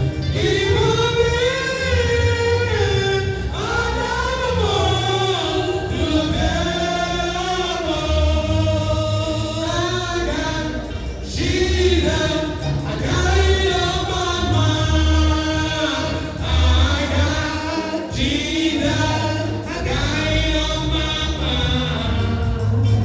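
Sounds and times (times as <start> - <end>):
deep bass notes: 0.0 - 23.0
gospel choir singing: 0.0 - 23.0.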